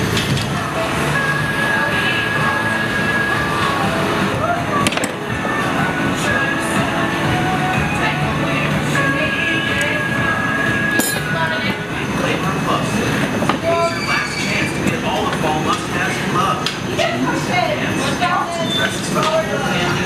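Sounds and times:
gas burners rushing: 0:00.0 - 0:20.0
people talking: 0:00.5 - 0:20.0.

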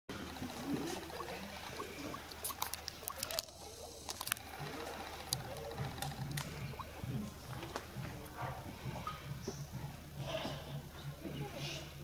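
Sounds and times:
faint low hum: 0:00.1 - 0:12.0.

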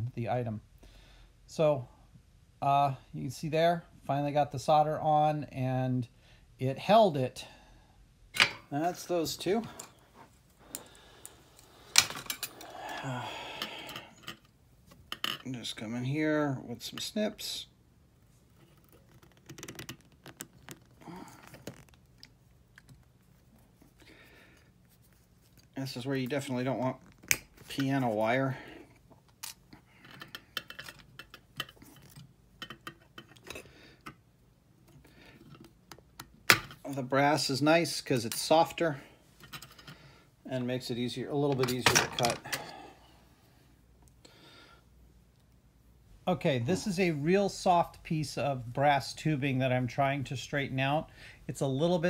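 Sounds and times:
soft handling rustle: 0:08.7 - 0:12.5, 0:18.1 - 0:32.4
metal tools clicking and rattling: 0:29.4 - 0:33.6.

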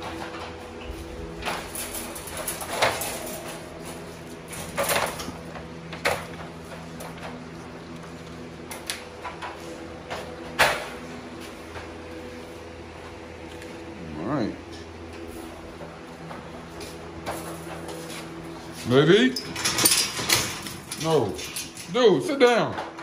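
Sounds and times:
steady hum with held tones: 0:00.0 - 0:23.0.

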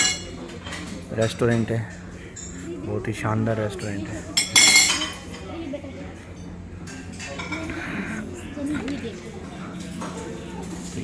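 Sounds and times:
dishes and cutlery clinking: 0:00.0 - 0:02.6, 0:03.7 - 0:05.5, 0:06.3 - 0:07.8
murmur of voices: 0:00.0 - 0:11.0.

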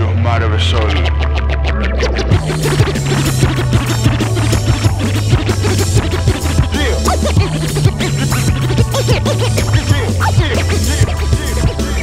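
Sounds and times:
hip hop beat with bass: 0:00.0 - 0:12.0
turntable scratching: 0:00.4 - 0:12.0.

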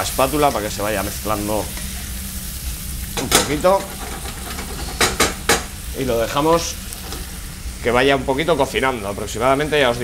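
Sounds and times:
food sizzling in frying pan: 0:00.0 - 0:10.0
spatula knocking against pan: 0:04.3 - 0:05.8.

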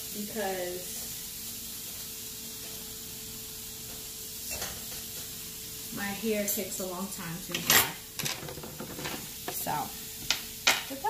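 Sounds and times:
sausage sizzling in a frying pan: 0:00.0 - 0:11.0.

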